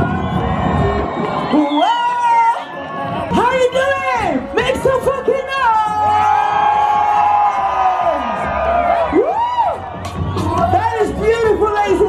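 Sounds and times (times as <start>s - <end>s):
pulsing bass beat: 0.0s - 1.6s, 3.1s - 12.0s
crowd cheering: 0.0s - 4.5s, 5.8s - 12.0s
live concert music over pa: 0.0s - 12.0s.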